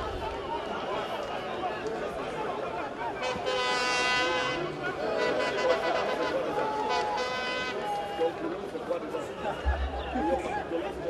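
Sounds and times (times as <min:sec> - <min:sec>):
voices chattering: 0:00.0 - 0:11.0
long steady horn blast: 0:03.2 - 0:08.0.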